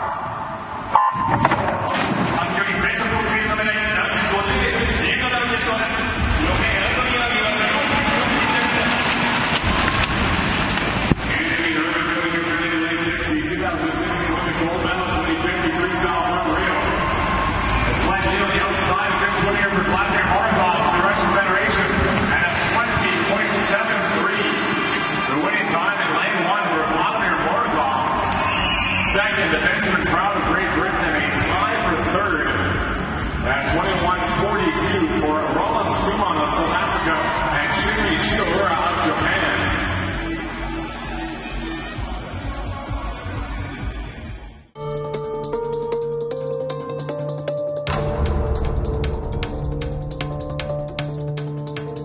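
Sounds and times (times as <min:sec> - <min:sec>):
indoor swimming pool noise: 0:00.0 - 0:44.6
crowd noise: 0:02.0 - 0:27.8
man talking: 0:02.4 - 0:09.0, 0:11.3 - 0:16.8
swimmers splashing: 0:06.6 - 0:12.8.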